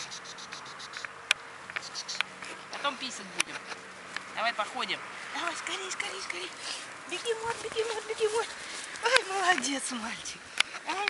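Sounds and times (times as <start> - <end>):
insects chirping: 0.0 - 3.2.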